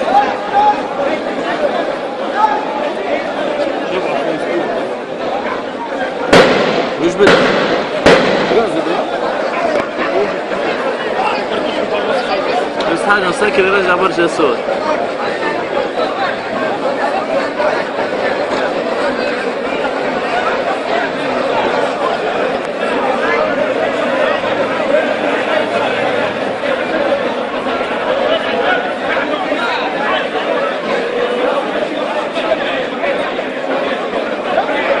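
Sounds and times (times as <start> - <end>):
hubbub of overlapping voices: 0.0 - 35.0
people chattering: 0.0 - 35.0.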